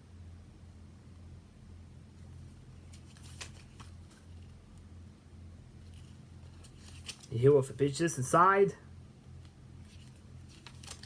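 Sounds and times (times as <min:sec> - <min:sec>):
paper pages rustling: 0:02.2 - 0:04.6, 0:05.8 - 0:07.4, 0:09.4 - 0:11.0.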